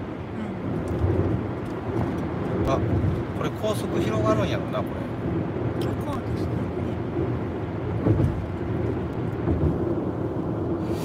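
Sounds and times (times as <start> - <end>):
road and engine rumble: 0.0 - 11.0.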